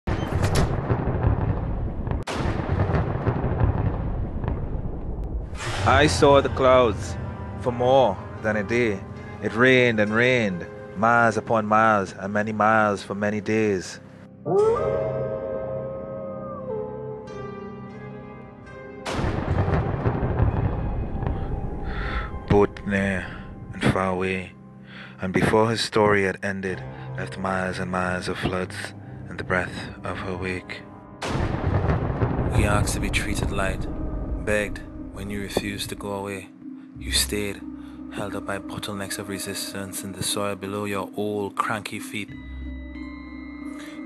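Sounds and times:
sharp thunder cracks: 0:00.1 - 0:07.0, 0:19.1 - 0:24.0, 0:31.2 - 0:36.1
low rumble of thunder: 0:00.5 - 0:06.6, 0:19.2 - 0:24.0, 0:31.3 - 0:36.1
soft music: 0:05.6 - 0:44.0.

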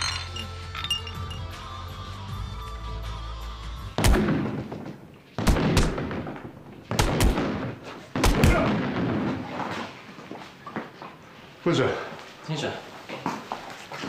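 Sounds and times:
music: 0:00.0 - 0:04.4.

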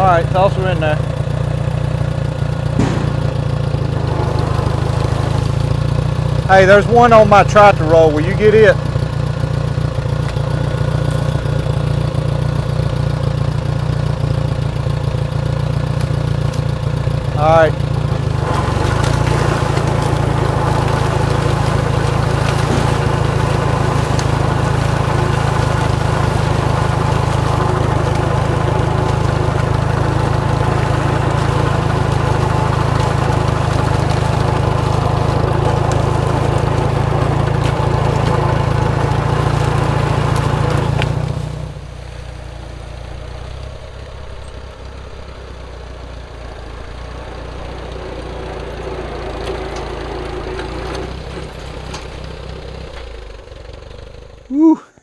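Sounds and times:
tractor engine running: 0:00.0 - 0:55.0.

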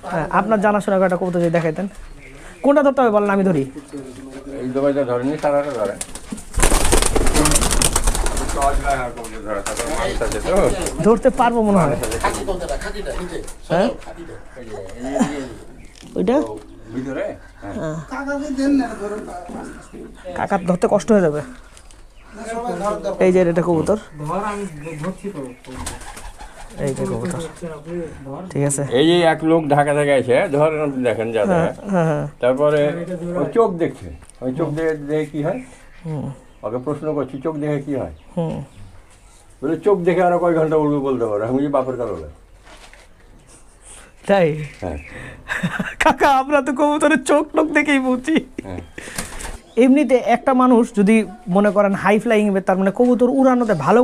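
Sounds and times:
pigeon wings flapping: 0:05.7 - 0:11.1, 0:11.7 - 0:13.0, 0:25.7 - 0:27.6, 0:49.0 - 0:49.6
pigeons cooing: 0:06.0 - 0:28.3.

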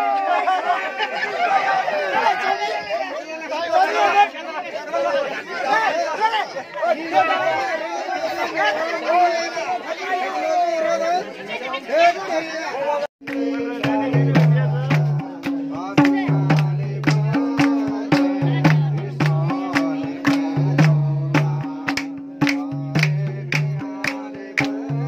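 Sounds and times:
loud crowd chatter: 0:00.0 - 0:25.0.

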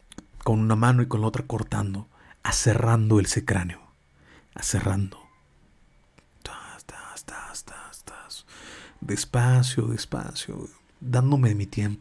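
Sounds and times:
man whispering rasping stroke sounds: 0:06.4 - 0:12.0.

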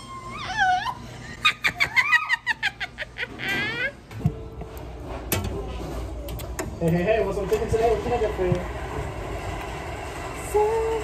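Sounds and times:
woman laughing and squealing: 0:00.0 - 0:04.0
low machine hum: 0:00.0 - 0:11.0.

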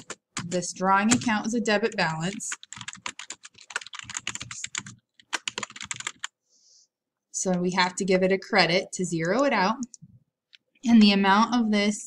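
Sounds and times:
fast keyboard typing: 0:00.0 - 0:06.4.

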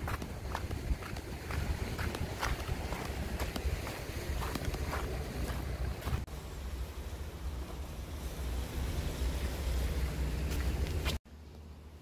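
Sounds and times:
footsteps crunching on stones: 0:00.0 - 0:06.3
wind buffeting microphone: 0:00.0 - 0:06.3
surf washing over rocks: 0:00.0 - 0:10.9.

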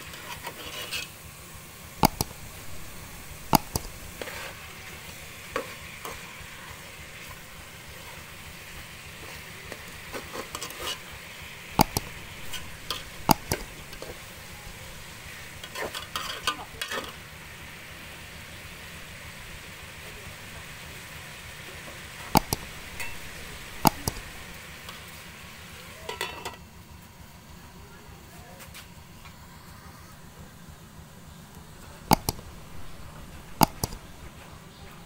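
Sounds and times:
fish sizzling in sauce: 0:00.0 - 0:27.6, 0:29.0 - 0:35.0
metal ladle clanking against pot: 0:22.4 - 0:24.4.

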